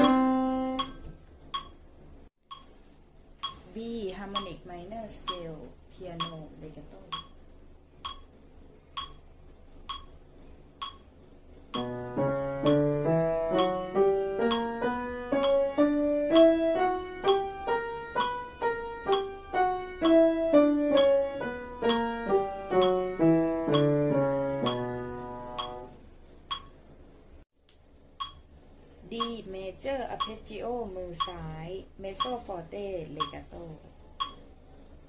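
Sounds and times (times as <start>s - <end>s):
piano playing a scale: 0.0s - 1.1s, 11.8s - 26.0s
metronome ticking: 0.0s - 2.8s, 3.4s - 26.8s, 28.2s - 34.6s.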